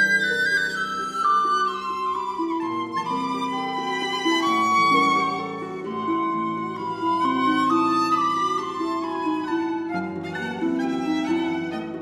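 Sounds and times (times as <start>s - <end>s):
sustained violin notes: 0.0s - 12.0s.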